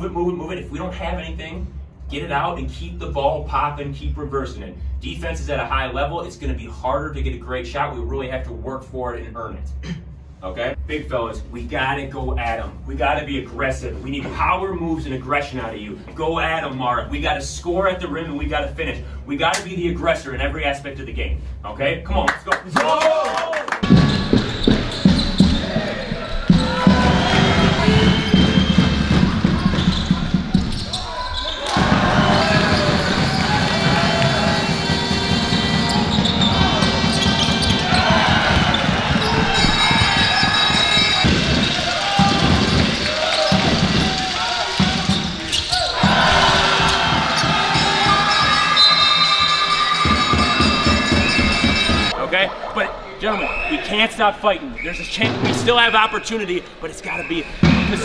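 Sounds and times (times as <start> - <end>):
people shouting and talking: 22.8 - 58.0
basketball bouncing on court: 23.8 - 52.2.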